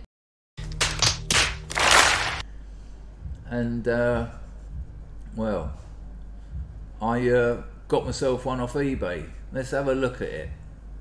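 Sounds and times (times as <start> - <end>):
audience applauding: 0.8 - 2.4.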